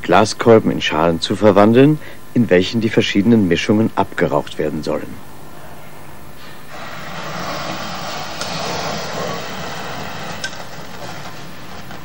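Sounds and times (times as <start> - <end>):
burning fuse hissing: 6.4 - 12.0.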